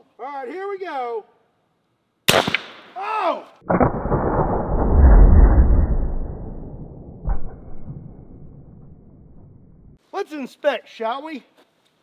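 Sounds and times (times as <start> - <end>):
slowed gunshot boom: 3.6 - 10.0.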